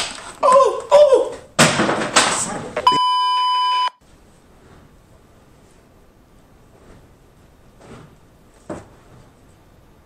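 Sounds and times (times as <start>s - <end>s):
censor bleep: 2.8s - 4.0s.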